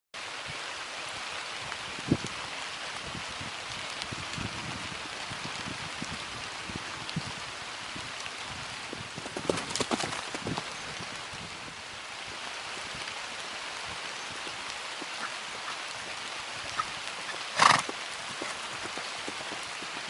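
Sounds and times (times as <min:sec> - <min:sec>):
horse hoofbeats on grass: 0:09.2 - 0:11.0, 0:14.3 - 0:20.0.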